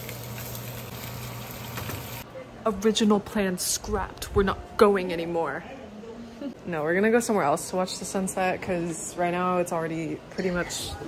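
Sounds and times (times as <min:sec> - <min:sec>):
meat sizzling in oil: 0:00.0 - 0:02.2.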